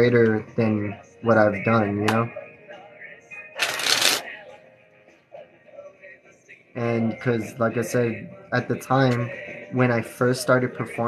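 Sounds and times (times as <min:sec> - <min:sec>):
playing cards riffled: 0:03.6 - 0:04.2.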